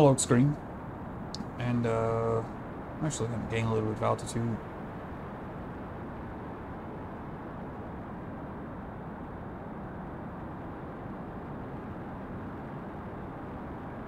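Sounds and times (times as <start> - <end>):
low rumbling hiss: 0.0 - 14.0.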